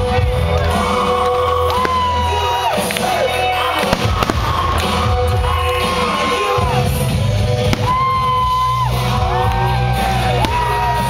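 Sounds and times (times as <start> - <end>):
fireworks bursting with bangs: 3.8 - 6.2, 7.5 - 8.7, 10.4 - 11.0.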